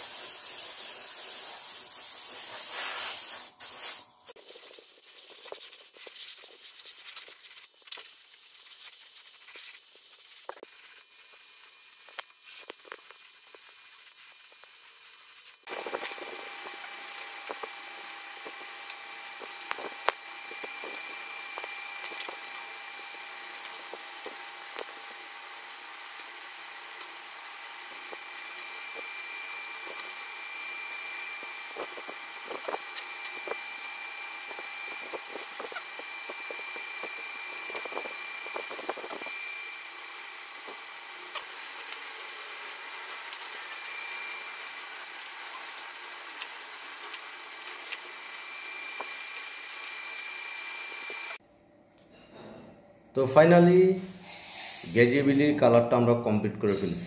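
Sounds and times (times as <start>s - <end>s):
tape peeling ticks and rustles: 3.8s - 14.8s, 15.4s - 39.5s, 40.5s - 51.4s
steady mechanical hum: 9.6s - 57.0s.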